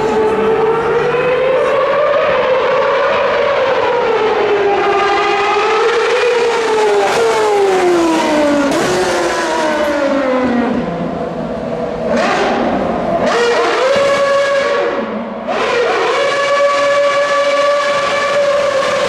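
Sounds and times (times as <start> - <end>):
racing car engine at high revs: 0.0 - 19.0.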